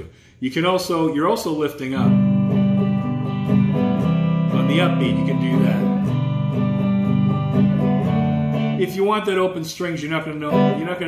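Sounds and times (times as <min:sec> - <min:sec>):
electric guitar strumming chord: 0:02.1 - 0:08.9, 0:10.4 - 0:10.9.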